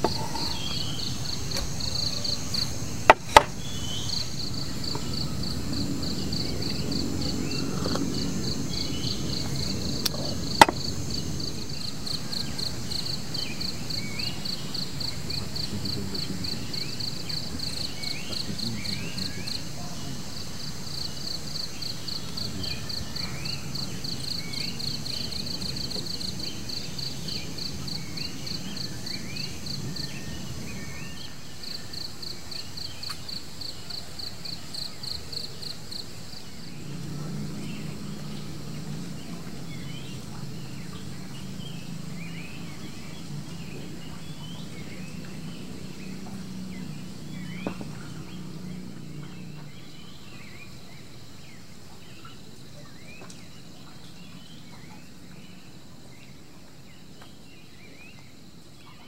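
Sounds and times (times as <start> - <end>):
insect chirping: 0.0 - 59.0.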